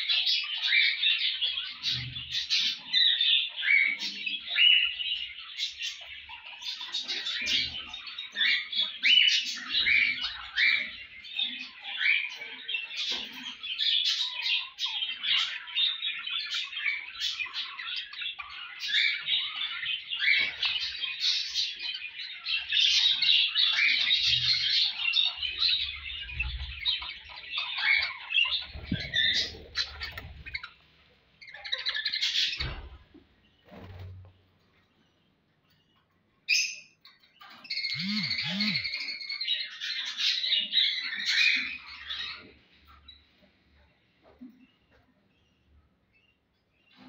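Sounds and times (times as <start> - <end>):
budgerigars chattering: 0.1 - 30.8, 37.6 - 42.5.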